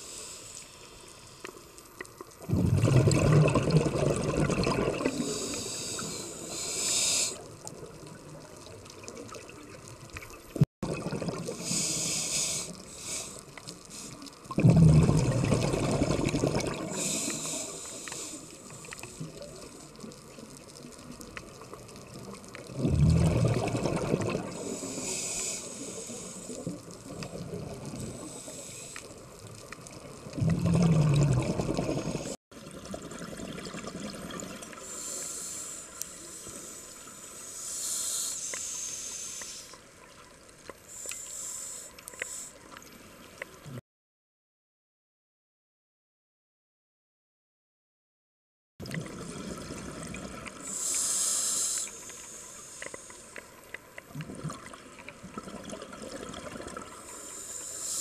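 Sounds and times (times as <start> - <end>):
exhaled bubbles bursts: 2.4 - 5.6, 10.4 - 11.8, 14.4 - 17.4, 22.2 - 24.8, 30.2 - 34.8, 48.8 - 50.8, 54.1 - 57.0
hissing regulator inhalations: 5.1 - 7.6, 11.6 - 14.5, 16.8 - 19.8, 24.5 - 26.8, 28.1 - 29.4, 34.8 - 39.9, 40.8 - 42.8, 50.5 - 53.8, 57.0 - 58.0.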